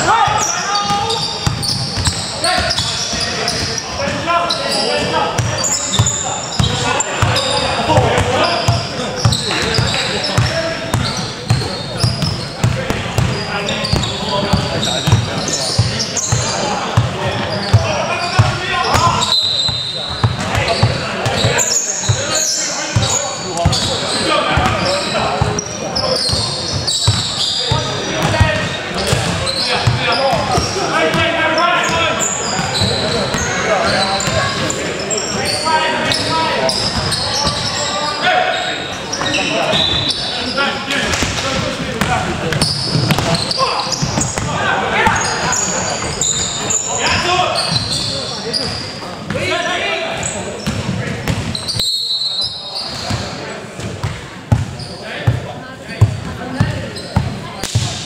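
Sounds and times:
players calling out: 0.0 - 53.7.

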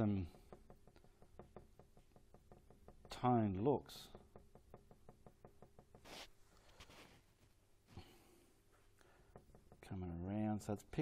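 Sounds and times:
paintbrush tapping on canvas: 0.1 - 7.0, 9.0 - 10.1.

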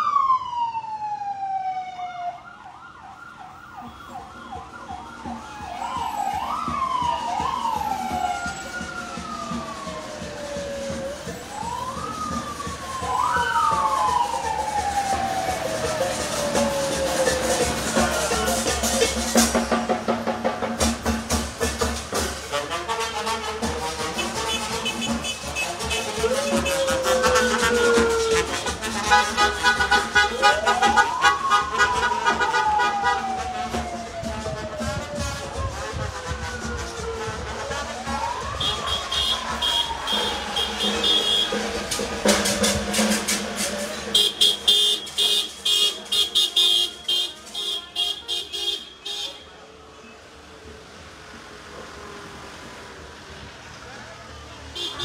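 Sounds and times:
brass band playing: 21.6 - 49.3
car horns honking: 22.3 - 33.2, 38.6 - 42.8, 44.0 - 49.6, 54.7 - 55.0.

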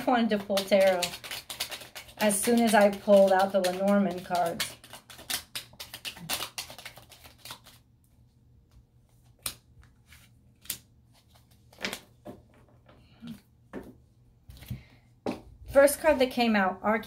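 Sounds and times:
cards being shuffled: 0.2 - 7.8, 8.8 - 12.7.

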